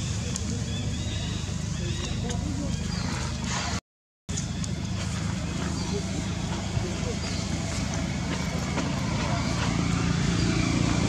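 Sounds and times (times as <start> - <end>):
low motor drone: 4.3 - 11.0.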